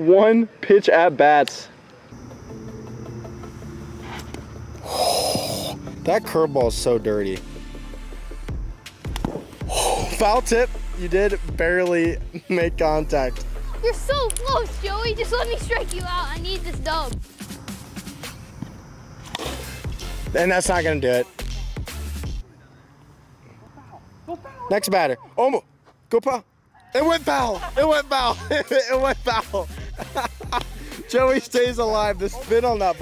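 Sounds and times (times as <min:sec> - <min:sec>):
quiet background music: 0:02.1 - 0:18.7, 0:19.3 - 0:22.9, 0:27.0 - 0:33.0
breathy hissing whoosh: 0:03.8 - 0:06.0, 0:09.4 - 0:10.3, 0:19.3 - 0:20.3
plastic bat hitting ball: 0:09.1 - 0:09.6.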